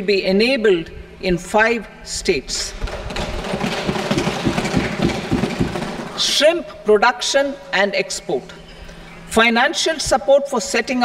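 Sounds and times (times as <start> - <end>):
people thumping wooden desks: 2.8 - 6.4.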